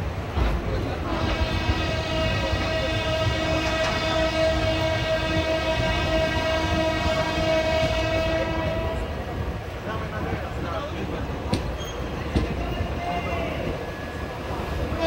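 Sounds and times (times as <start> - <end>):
moving train rumble: 0.0 - 15.0
train horn: 1.0 - 9.3.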